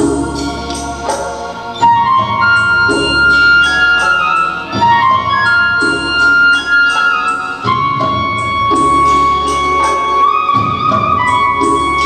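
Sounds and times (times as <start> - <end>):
bass notes: 0.0 - 12.0
flute-like melody: 0.0 - 12.0
keyboard chords: 0.0 - 12.0.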